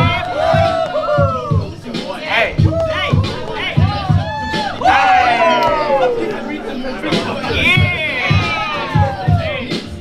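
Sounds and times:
voices calling out: 0.0s - 9.7s
hip hop beat: 0.0s - 10.0s.

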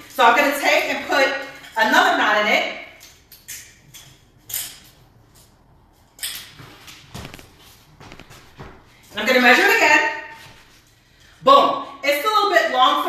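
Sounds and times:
rope cord rustling: 3.1s - 11.4s.

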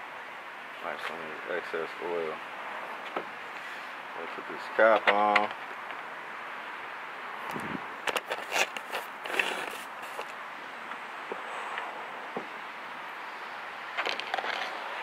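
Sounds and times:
outdoor background hiss: 0.0s - 15.0s
handling clicks and knocks: 4.8s - 6.0s.

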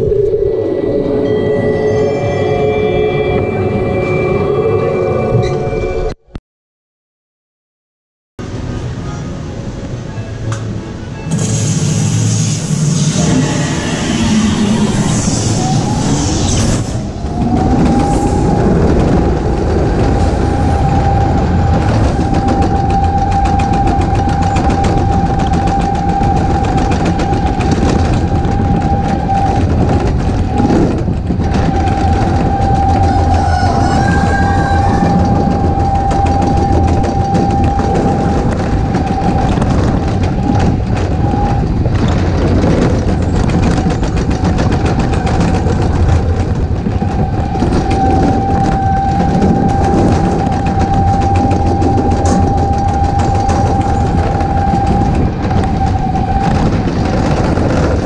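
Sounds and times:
coaster car rolling rumble: 0.0s - 6.2s, 8.4s - 58.0s
high whine of wheels: 8.4s - 58.0s.

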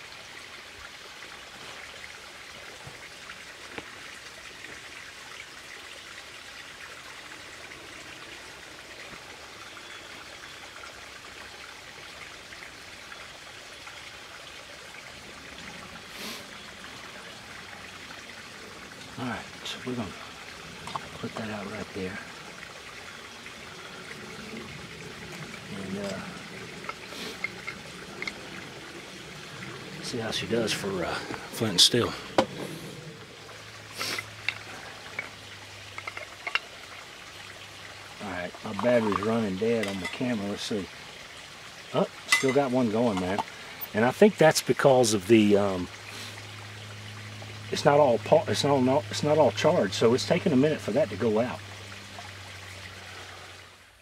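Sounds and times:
steady background hiss: 0.0s - 54.0s
trickling running water: 0.0s - 54.0s.

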